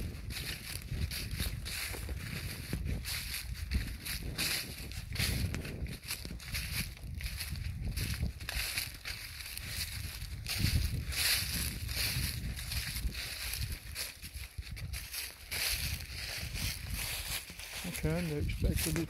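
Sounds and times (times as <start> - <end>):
footsteps crunching dry leaves: 0.0 - 19.0.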